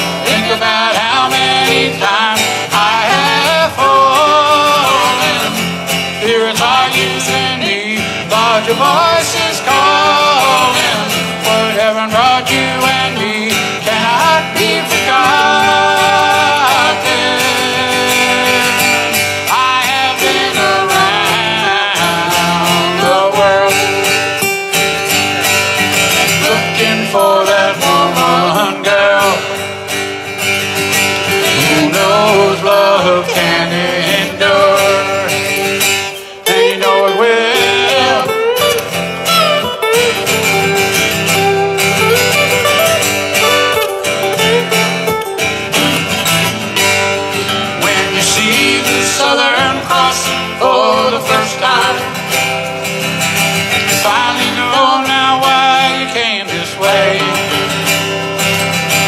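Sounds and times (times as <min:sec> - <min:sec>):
man singing: 0:00.0 - 0:24.5, 0:26.2 - 0:29.9, 0:31.3 - 0:38.9, 0:47.6 - 0:52.4, 0:53.7 - 0:58.0
acoustic guitars strummed and picked: 0:00.0 - 0:59.0.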